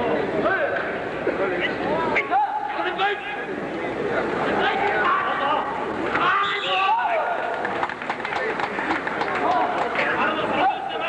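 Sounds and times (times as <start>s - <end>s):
men calling out and talking: 0.0s - 11.0s.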